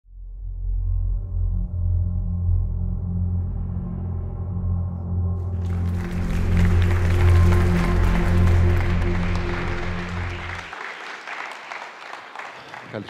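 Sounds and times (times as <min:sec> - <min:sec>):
low sustained music notes: 0:00.5 - 0:10.7
audience applauding: 0:05.5 - 0:13.0.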